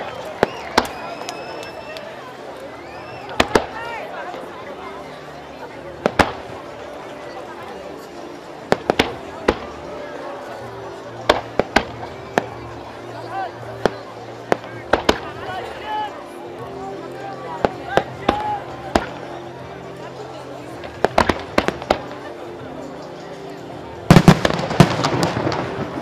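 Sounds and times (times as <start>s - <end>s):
fireworks bangs: 24.1s - 26.0s.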